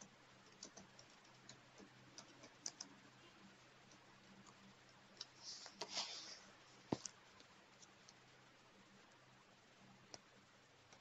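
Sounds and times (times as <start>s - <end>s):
soft irregular clicks: 0.0s - 5.9s, 6.9s - 8.3s, 10.0s - 11.0s.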